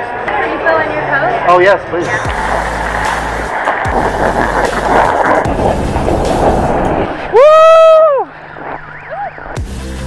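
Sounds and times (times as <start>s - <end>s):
snowboard scraping over snow: 2.1s - 7.8s
wind on microphone: 2.3s - 9.6s.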